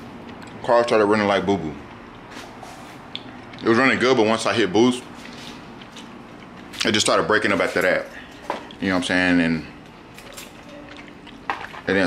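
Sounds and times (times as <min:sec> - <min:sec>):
man chewing with mouth clicks: 0:00.0 - 0:00.6, 0:01.8 - 0:03.9, 0:05.1 - 0:07.0, 0:09.8 - 0:11.5.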